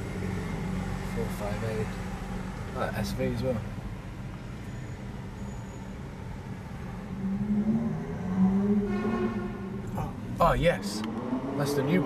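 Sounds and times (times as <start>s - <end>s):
car engine drone: 0.0s - 12.0s
road noise inside car cabin: 0.0s - 12.0s.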